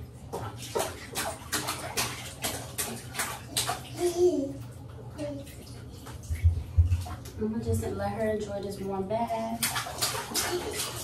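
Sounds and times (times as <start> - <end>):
bath water splashing: 0.0 - 11.0.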